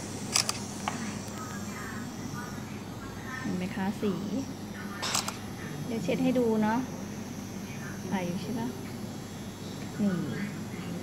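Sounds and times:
woman speaking: 1.0 - 7.0, 7.7 - 8.9, 10.0 - 11.0.

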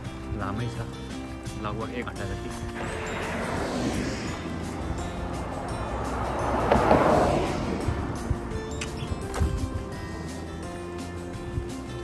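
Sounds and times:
background music: 0.0 - 12.0
car passing close by: 2.6 - 8.9.

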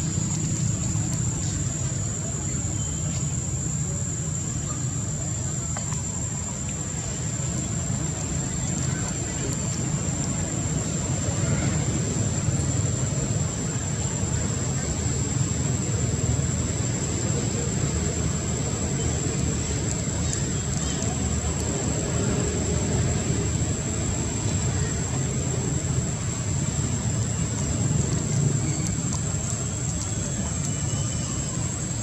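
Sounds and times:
low outdoor rumble: 0.0 - 32.0.

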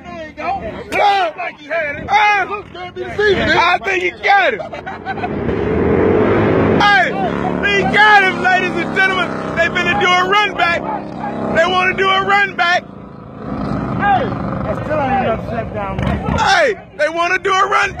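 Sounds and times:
voices shouting and talking: 0.0 - 18.0
vehicle engine revving: 3.9 - 17.4.

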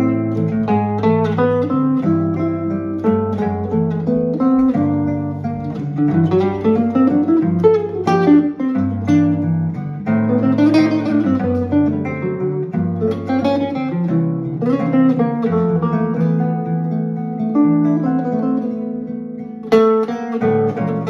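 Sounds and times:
archtop guitar: 0.0 - 21.0
nylon-string classical guitar: 0.0 - 21.0.

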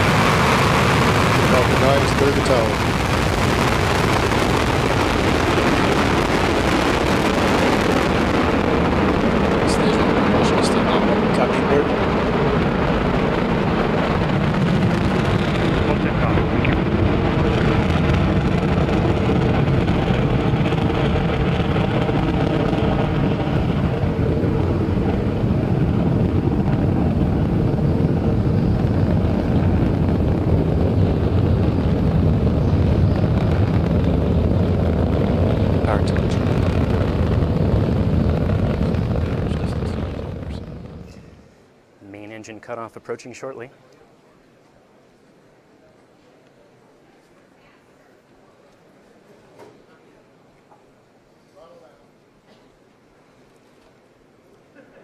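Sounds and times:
rocket engines rumbling: 0.0 - 43.6.

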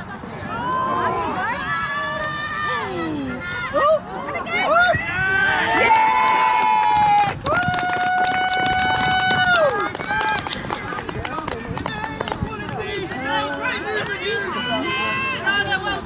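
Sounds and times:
people shouting and cheering: 0.2 - 16.0.

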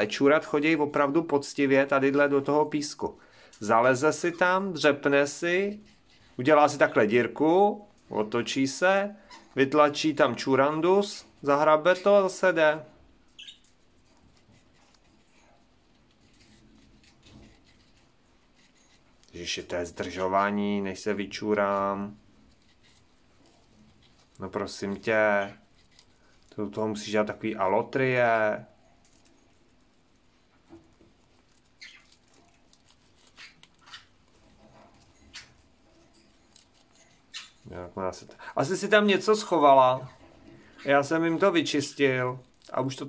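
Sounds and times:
hamster scratching in sand: 14.0 - 19.4, 21.6 - 26.4, 29.1 - 37.6.

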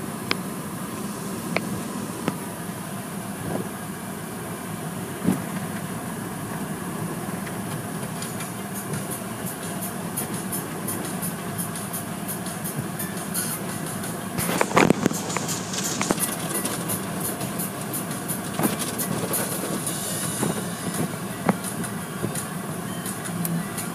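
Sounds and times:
car wash machine noise: 0.0 - 23.9
water spray: 8.3 - 22.6
brushes slapping windshield: 14.4 - 22.5.

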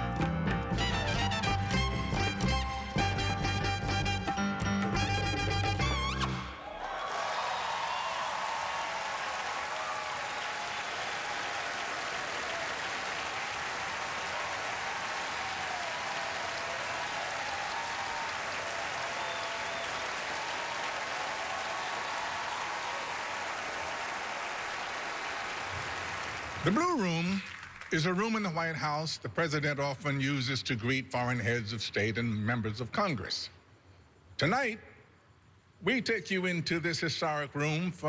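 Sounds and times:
jazz band playing: 0.0 - 6.6
audience applauding: 5.8 - 28.0
scattered cheers: 6.4 - 26.7.

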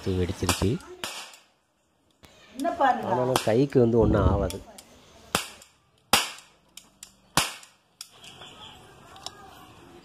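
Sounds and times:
toy cap gun cracks: 0.4 - 1.5, 4.4 - 8.4.

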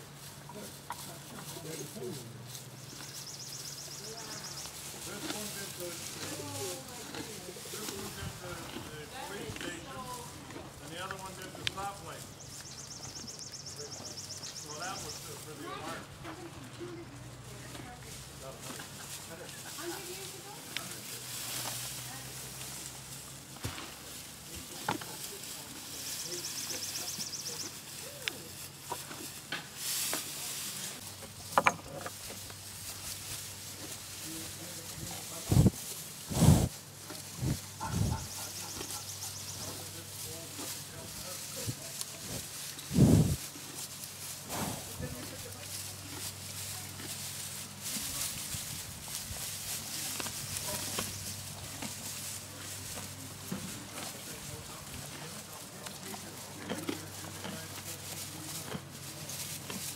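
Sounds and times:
donkeys chewing hay: 0.0 - 59.9
dry straw rustling: 0.0 - 59.9
donkey puffing breath: 36.3 - 36.8.

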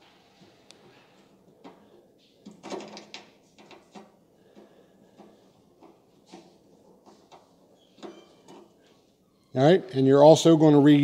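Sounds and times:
faint clicks and metal handling: 0.7 - 9.0.

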